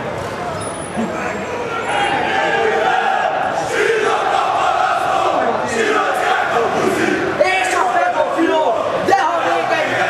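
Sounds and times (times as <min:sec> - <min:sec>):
crowd shouting: 0:01.4 - 0:10.0.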